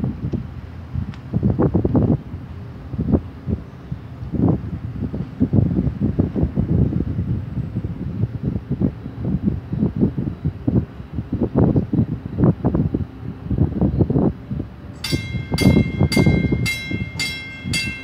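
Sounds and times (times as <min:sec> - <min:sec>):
wind rumble on microphone: 0:00.0 - 0:18.0
warning bell ringing: 0:15.0 - 0:18.0.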